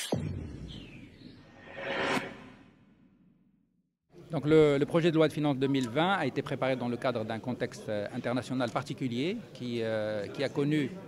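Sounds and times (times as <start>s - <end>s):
whoosh sound effect: 1.4s - 3.0s.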